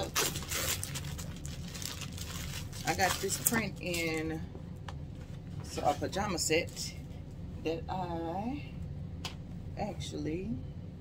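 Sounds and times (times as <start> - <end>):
plastic bag ripping: 0.0 - 4.2
plastic rustling: 0.0 - 4.2.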